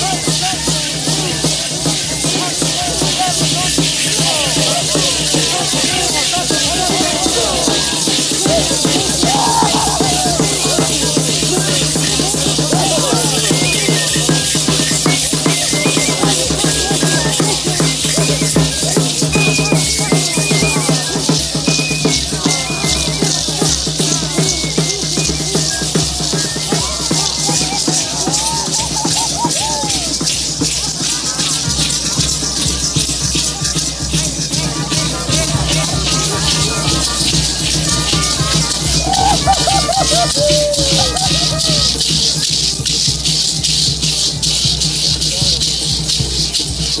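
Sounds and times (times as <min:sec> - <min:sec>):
cane flute melody: 0:00.0 - 0:30.3, 0:34.7 - 0:42.6
gourd rattles shaking: 0:00.0 - 0:47.0.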